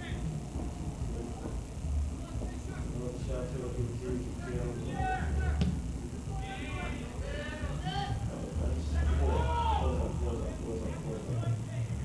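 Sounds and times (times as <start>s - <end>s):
distant shouting voices: 4.4s - 10.2s.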